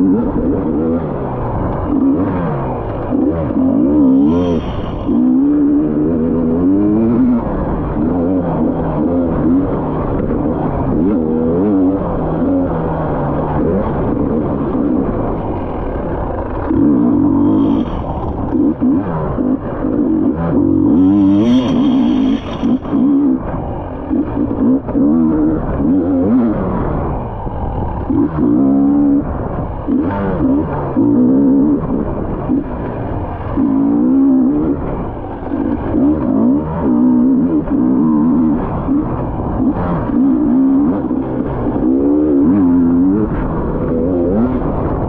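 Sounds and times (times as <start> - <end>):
dirt bike engine revving: 0.0 - 45.0.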